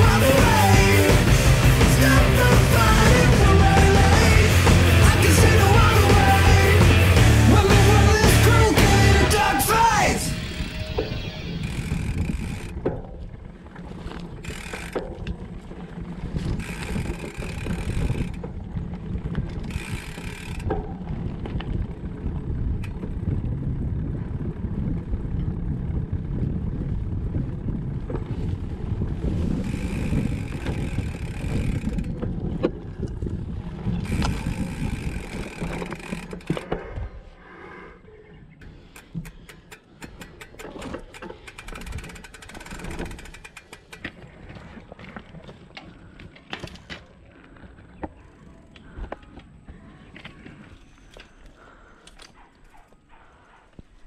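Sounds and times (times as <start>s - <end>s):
rapid bike ticks and clicks: 0.0s - 9.9s, 11.0s - 37.1s, 38.5s - 54.0s
bike tyres rumbling on dirt: 0.0s - 37.3s, 38.7s - 51.9s.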